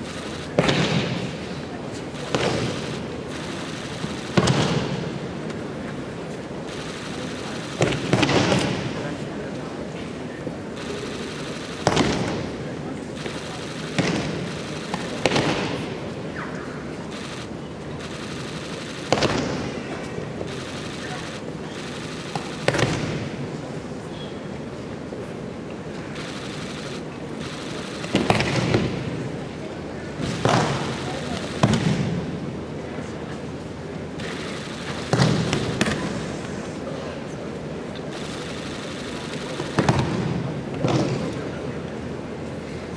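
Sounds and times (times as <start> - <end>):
crowd murmur: 0.0 - 42.9.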